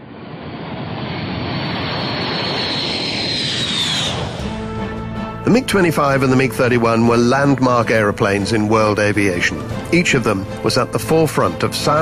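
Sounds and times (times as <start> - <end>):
high jet whine: 0.0 - 6.5
jet engine roar: 0.0 - 6.7.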